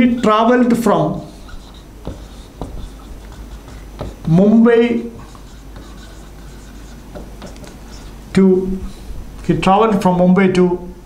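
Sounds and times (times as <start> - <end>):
marker scratching on whiteboard: 0.0 - 8.2.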